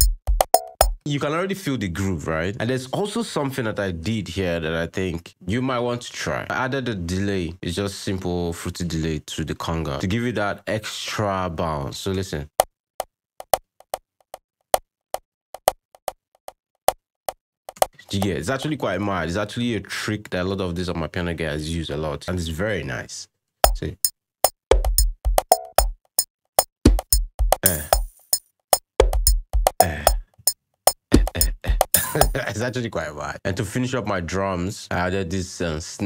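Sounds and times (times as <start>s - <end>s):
electronic drum loop: 0.0s - 1.0s, 23.6s - 32.4s
conga hits with delay echoes: 26.6s - 28.4s, 30.9s - 32.4s.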